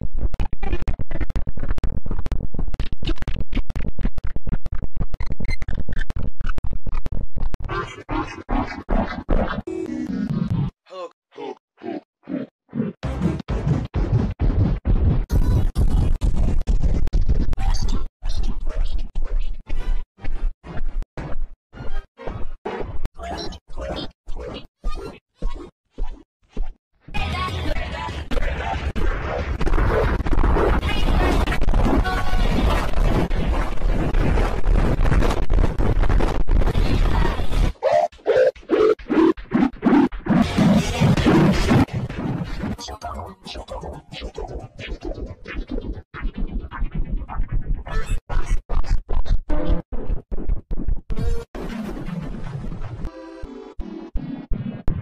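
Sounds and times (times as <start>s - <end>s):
distorted stuttering grunting loop: 0.0s - 11.6s, 13.0s - 19.6s, 23.2s - 24.7s, 27.2s - 46.0s
short grunt-like vocal sounds: 10.9s - 11.6s.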